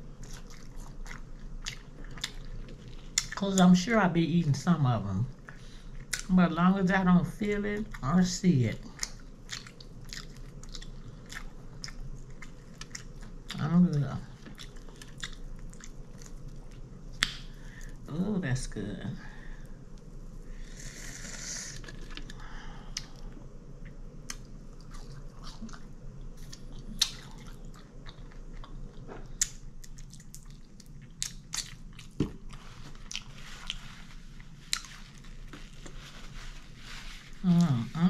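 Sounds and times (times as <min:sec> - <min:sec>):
chewing crispy chicken: 0:00.0 - 0:03.9, 0:07.4 - 0:18.0, 0:21.7 - 0:38.0.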